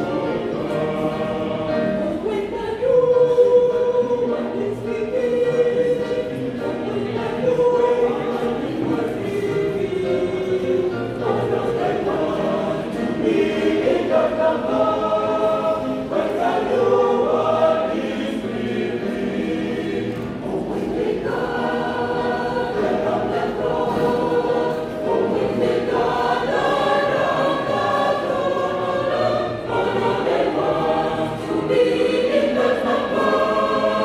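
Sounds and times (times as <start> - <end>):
mixed choir singing a hymn: 0.0 - 34.0.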